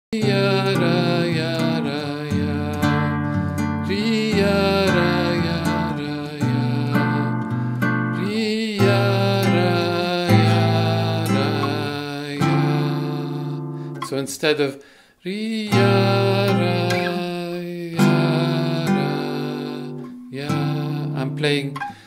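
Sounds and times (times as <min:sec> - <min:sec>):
fingerstyle classical guitar: 0:00.2 - 0:14.4, 0:15.7 - 0:22.0.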